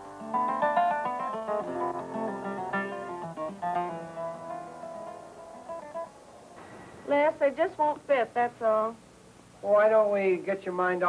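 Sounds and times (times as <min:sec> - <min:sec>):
plucked guitar notes and chords: 0:00.0 - 0:06.6.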